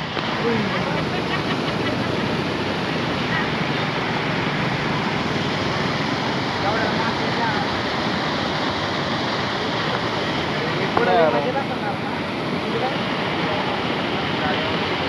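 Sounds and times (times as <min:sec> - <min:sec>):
river water rushing: 0:00.0 - 0:15.0.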